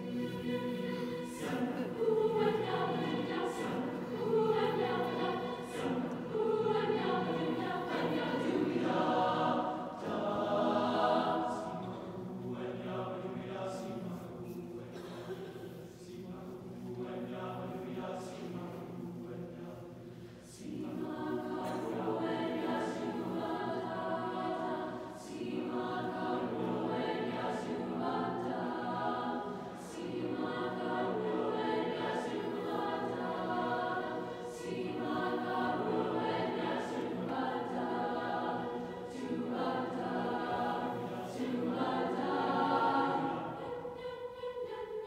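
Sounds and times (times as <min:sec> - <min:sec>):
mixed choir singing chords: 0:00.0 - 0:45.0.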